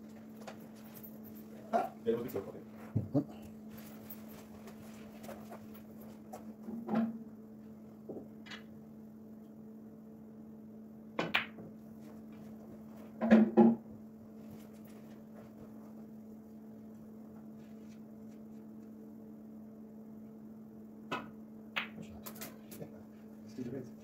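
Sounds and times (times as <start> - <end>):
steady low hum: 0.0 - 24.0
cue tip striking ball: 11.2 - 11.6
snooker balls knocking together: 11.2 - 11.7, 13.2 - 13.8.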